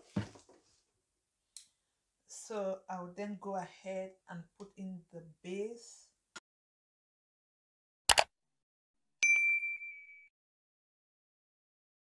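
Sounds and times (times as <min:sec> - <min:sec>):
bright bell ding: 0:09.2 - 0:10.3.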